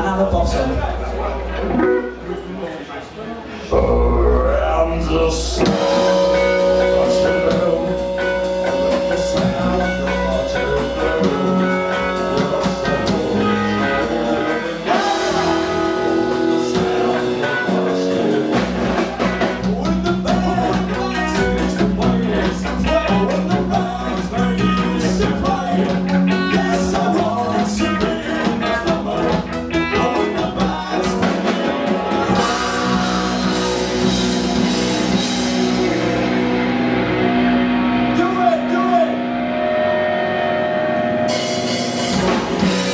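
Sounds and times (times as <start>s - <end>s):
electric guitar chords: 0.0s - 2.6s, 3.7s - 42.9s
drum kit with cymbals: 5.6s - 36.5s, 41.3s - 42.9s.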